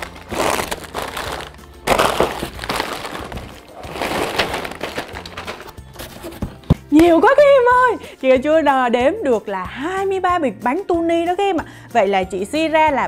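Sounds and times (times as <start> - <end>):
plastic snack bags rustling: 0.0 - 6.6.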